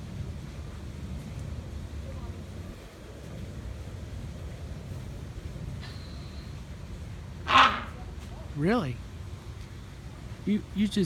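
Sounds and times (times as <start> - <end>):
hornbill harsh honk: 7.5 - 8.0.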